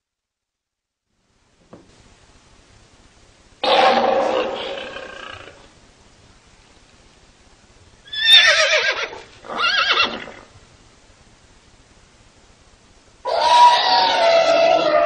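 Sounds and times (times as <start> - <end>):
animal-like calls with wavering pitch: 3.6 - 5.7, 13.3 - 15.0.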